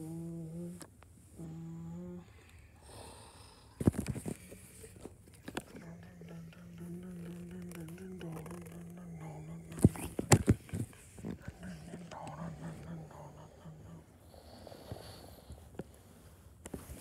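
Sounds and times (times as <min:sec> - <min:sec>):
person humming low notes: 0:00.0 - 0:00.8, 0:01.4 - 0:02.3, 0:05.6 - 0:14.4.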